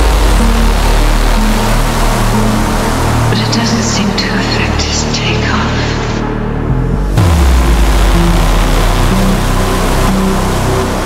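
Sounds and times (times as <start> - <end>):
deep bass note sliding down: 0.0 - 4.8, 6.2 - 11.0
hissing noise wash: 0.0 - 11.0
melodic techno music: 0.0 - 11.0.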